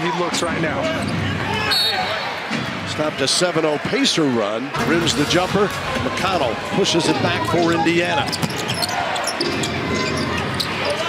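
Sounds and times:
crowd murmur: 0.0 - 11.0.

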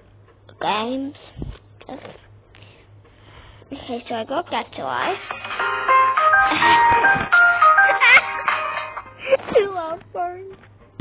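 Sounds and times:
bright electronic game melody: 5.2 - 9.3.

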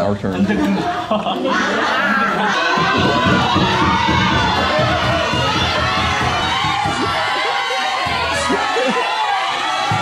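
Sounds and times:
students shouting and cheering: 0.0 - 10.0.

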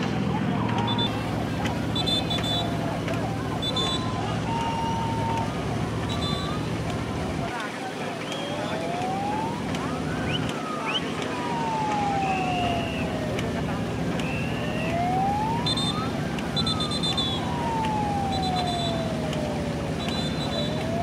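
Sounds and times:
churning water: 0.0 - 21.0
low engine drone: 0.0 - 21.0
rowers shouting: 0.0 - 21.0.

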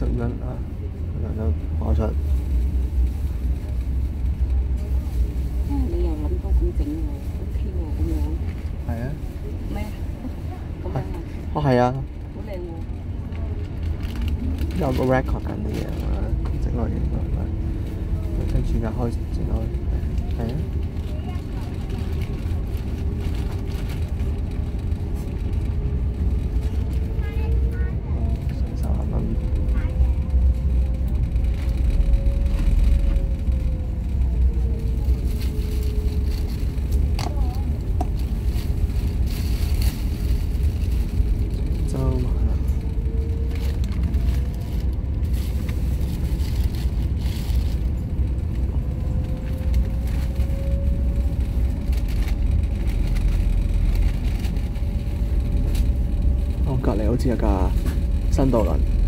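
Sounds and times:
ferry engines rumbling: 0.0 - 59.0.

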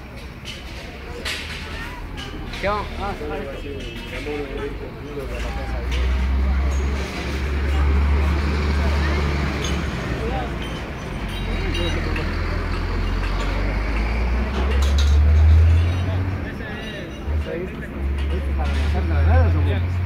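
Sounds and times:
people talking: 0.0 - 20.0.

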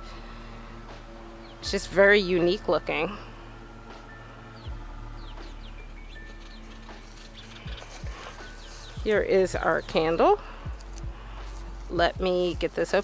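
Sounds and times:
steady low hum: 0.0 - 13.0
small birds chirping: 1.3 - 2.6, 4.0 - 13.0.

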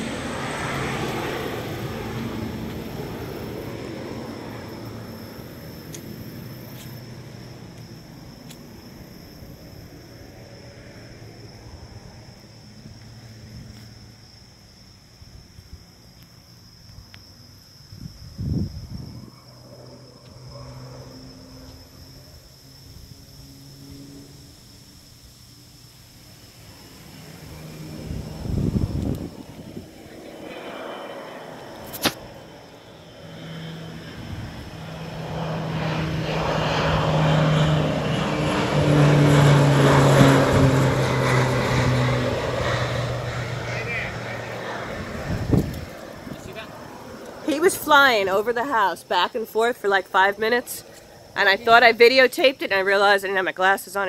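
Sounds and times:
airplane engine and propeller drone: 0.0 - 54.0.

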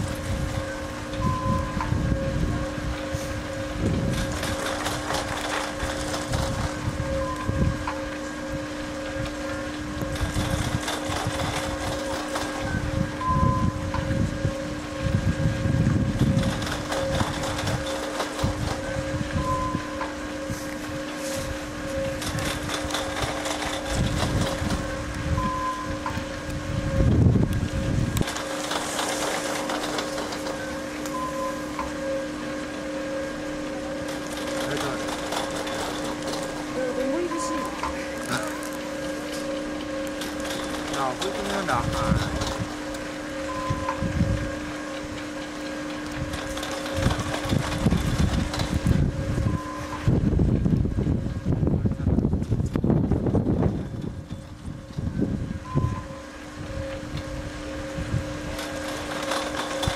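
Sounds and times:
wind gusting on microphone: 0.0 - 31.3, 40.4 - 45.4, 46.1 - 59.9
steady low hum: 0.0 - 59.9
short higher tone: 36.8 - 39.6.

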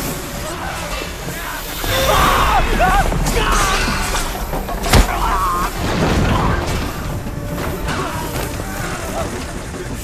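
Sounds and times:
low rumble: 0.9 - 9.8
sharp crash: 1.7 - 8.1.

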